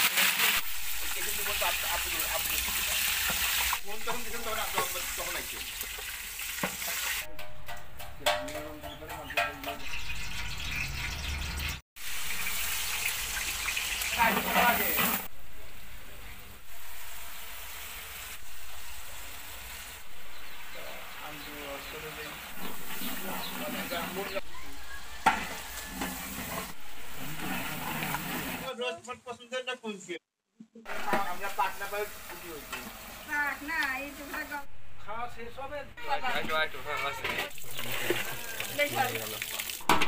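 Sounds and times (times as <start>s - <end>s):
hot oil sizzling: 0.0s - 28.7s, 30.8s - 40.0s
sharp metallic clank: 7.3s - 9.9s
metal spatula scraping pot: 14.2s - 15.3s, 25.2s - 28.7s, 36.9s - 38.4s.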